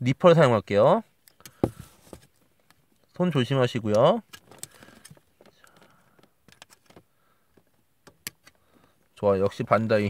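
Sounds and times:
handling noises: 1.4 - 2.8.

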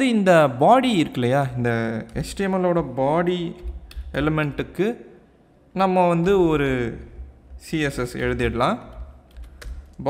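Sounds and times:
person speaking: 0.0 - 10.0
computer keyboard typing: 7.8 - 10.0.

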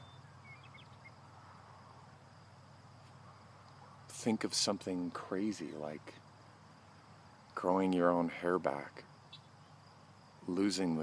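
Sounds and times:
faint crickets trilling: 0.0 - 11.0
tiny high chirps: 9.2 - 10.5.

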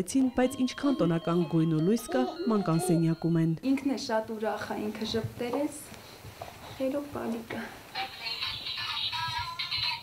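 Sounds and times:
toy doll electronic tune: 0.3 - 3.4.

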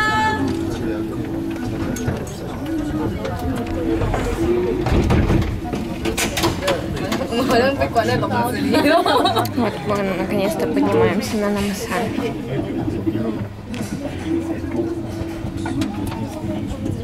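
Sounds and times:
people talking: 0.0 - 17.0.

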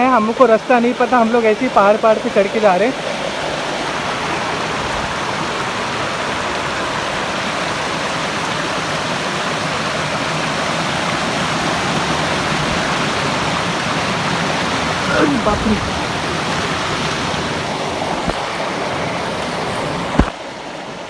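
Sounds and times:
stream rushing over boulders: 0.0 - 21.0.

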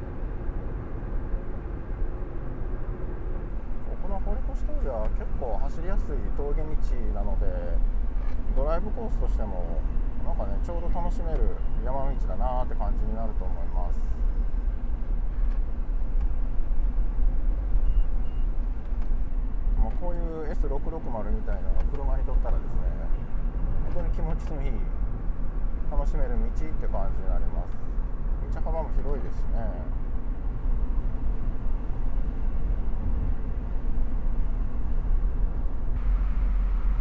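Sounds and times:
road and engine rumble: 0.0 - 37.0
faint high beeps: 17.8 - 18.6.

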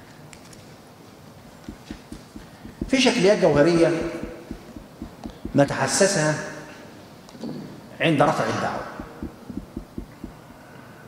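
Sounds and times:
soft low knocks on desk: 1.7 - 5.6, 8.8 - 10.4.

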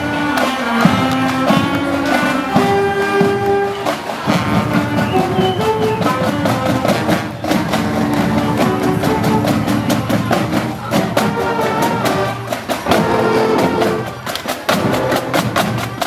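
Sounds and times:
marching band playing: 0.0 - 16.0
percussion beat: 0.0 - 16.0
saxophones and horns: 0.0 - 16.0.

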